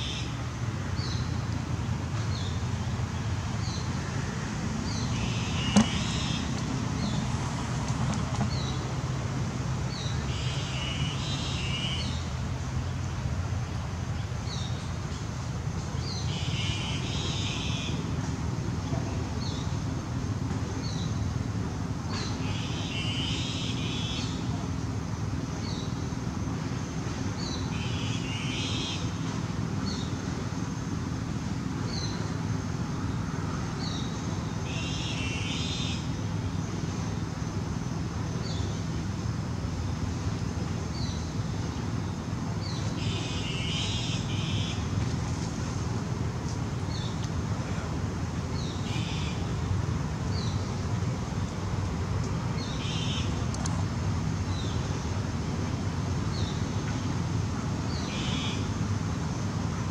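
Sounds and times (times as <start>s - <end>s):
bird calling: 4.9s - 7.2s, 42.8s - 45.0s, 52.6s - 53.4s.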